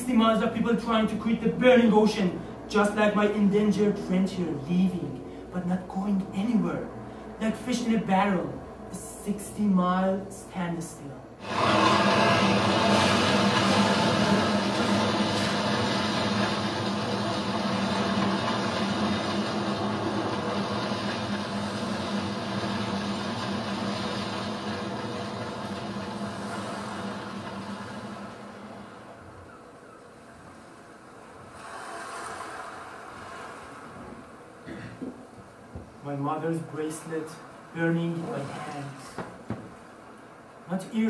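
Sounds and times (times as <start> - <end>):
mechanical engine drone: 11.4 - 29.6
soft swell of noise: 30.2 - 34.5.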